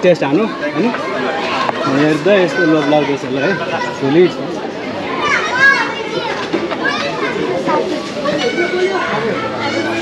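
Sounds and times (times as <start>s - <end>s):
people talking: 0.0s - 10.0s
children's high-pitched voices: 0.3s - 10.0s.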